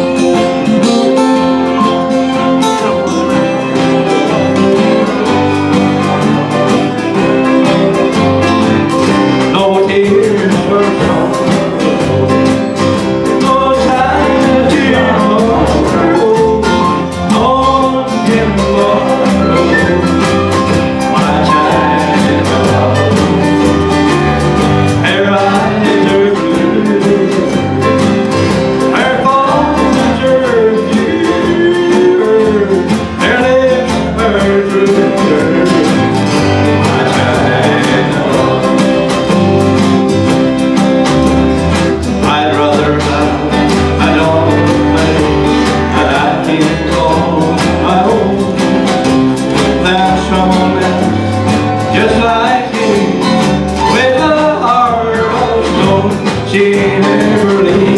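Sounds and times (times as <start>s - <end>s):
acoustic guitar strumming: 0.0s - 57.9s
bass: 0.0s - 57.9s
drums: 0.0s - 57.9s
man singing: 0.0s - 57.9s
mandolin: 0.0s - 57.9s.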